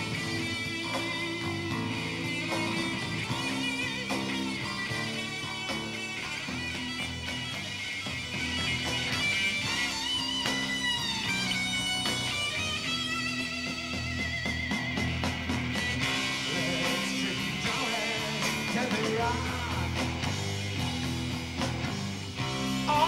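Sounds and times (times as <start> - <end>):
bass guitar: 0.0 - 23.0
drums: 0.0 - 23.0
electric lead guitar: 0.0 - 23.0
rhythm guitar: 0.0 - 23.0.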